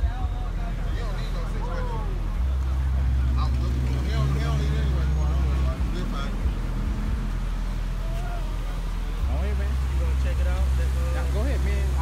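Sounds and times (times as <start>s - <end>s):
indistinct voices talking: 0.0s - 12.0s
street traffic rumble: 0.0s - 12.0s.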